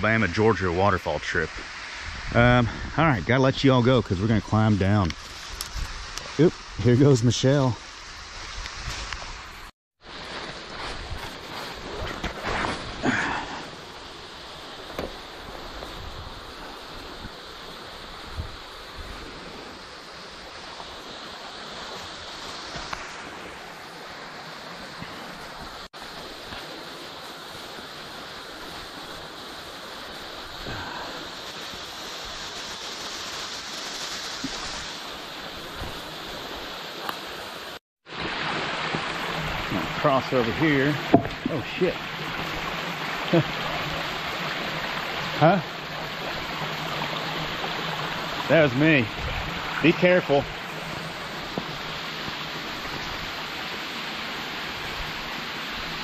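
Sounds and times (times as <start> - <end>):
water running over waterfall: 0.0 - 56.0
footsteps in dry leaves: 8.4 - 13.0.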